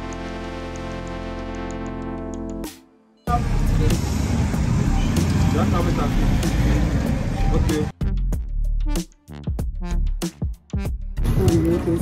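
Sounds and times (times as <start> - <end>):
people talking: 3.3 - 4.1, 5.0 - 6.3, 7.4 - 7.9, 11.3 - 12.0
steady traffic noise: 3.3 - 7.9.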